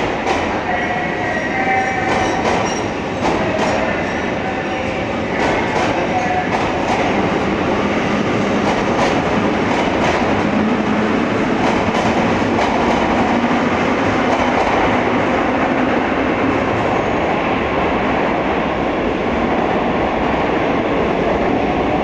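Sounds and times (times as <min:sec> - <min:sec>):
train rumbling past: 0:00.0 - 0:22.0.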